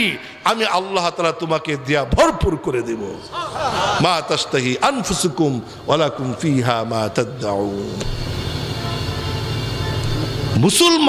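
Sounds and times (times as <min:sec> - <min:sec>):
low hum and rumble: 0:05.6 - 0:10.8.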